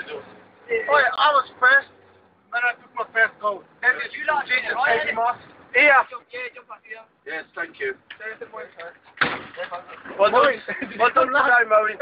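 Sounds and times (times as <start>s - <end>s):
sudden loud bang: 9.2s - 9.6s.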